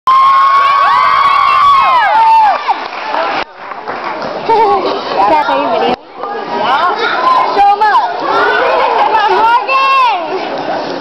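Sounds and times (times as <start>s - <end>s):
children shrieking and cheering: 7.0s - 10.3s.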